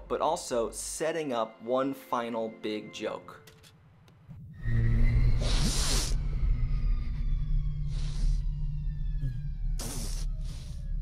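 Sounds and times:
downward sliding electronic tones: 4.4s - 11.0s
low machine hum: 4.7s - 11.0s
hissing whooshes: 5.2s - 6.4s, 9.8s - 10.8s.

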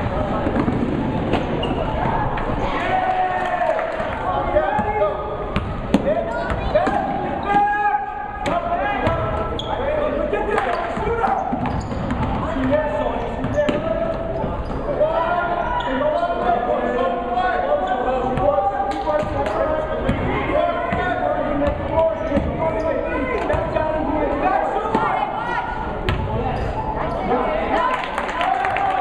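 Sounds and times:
hubbub of voices: 0.0s - 29.0s.

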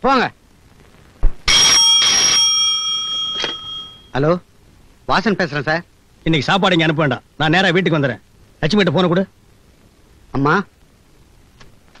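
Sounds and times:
telephone bell ringing: 1.5s - 4.1s.

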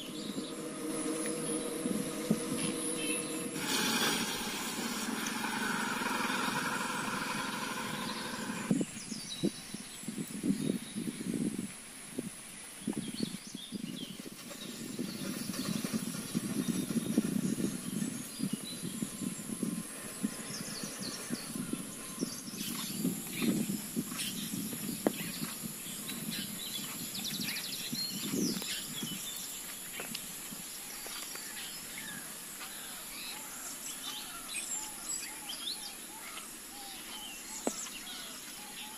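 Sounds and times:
steady high hiss: 0.0s - 8.8s
low rustling and rumbling: 0.0s - 9.1s, 13.0s - 29.4s
birds chirping: 0.0s - 11.4s, 12.6s - 38.9s.

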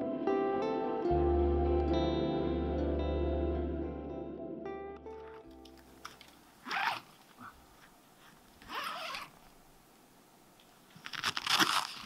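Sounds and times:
fabric zipper being unzipped: 6.6s - 7.1s, 8.6s - 9.4s.

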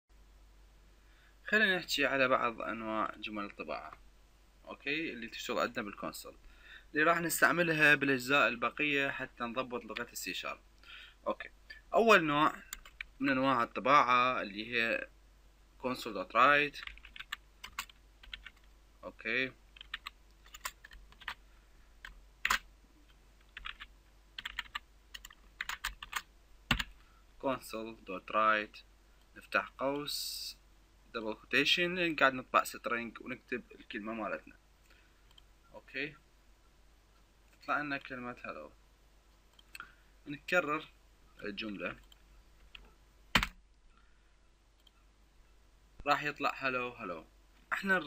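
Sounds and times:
keyboard typing: 12.7s - 13.2s, 16.8s - 18.7s, 19.8s - 21.4s, 22.0s - 22.7s, 23.4s - 27.0s, 42.0s - 43.6s.

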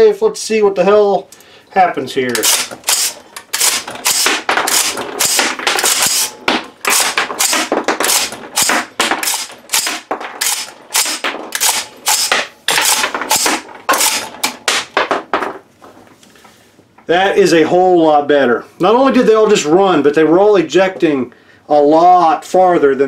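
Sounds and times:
rifle action metallic clacks: 2.3s - 6.3s, 6.9s - 14.6s.

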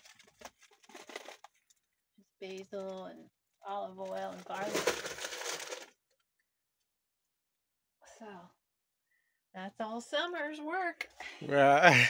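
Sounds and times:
plastic bag crinkling: 0.0s - 1.7s, 4.0s - 5.9s.

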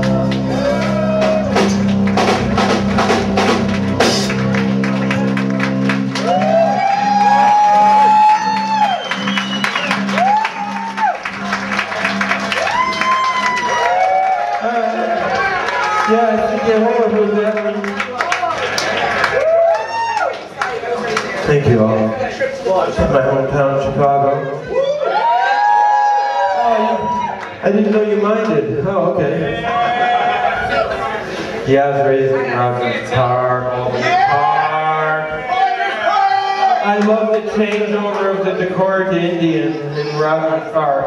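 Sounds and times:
drums and cymbal crashes: 1.1s - 4.6s.

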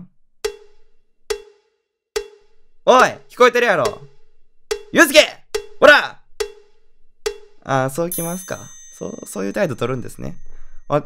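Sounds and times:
cowbell-like knocking dings: 0.4s - 1.6s, 2.2s - 11.0s.

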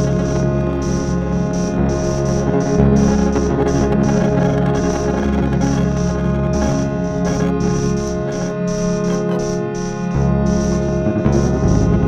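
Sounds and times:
electric guitar drone: 0.0s - 12.0s
high pulsing tone: 0.0s - 12.0s.

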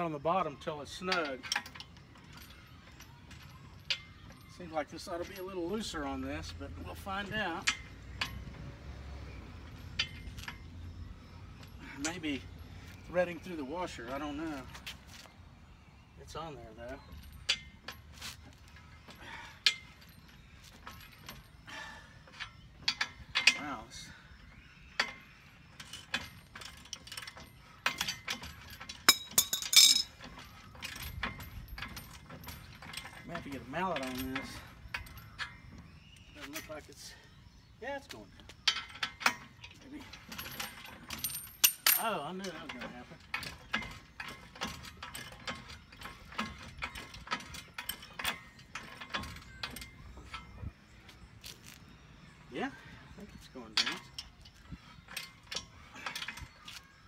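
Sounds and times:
metal tools clinking: 0.0s - 57.0s
metallic knocks: 25.0s - 36.6s.

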